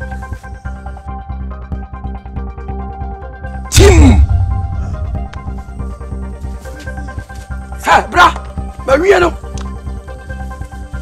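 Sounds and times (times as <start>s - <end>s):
film music: 0.1s - 11.0s.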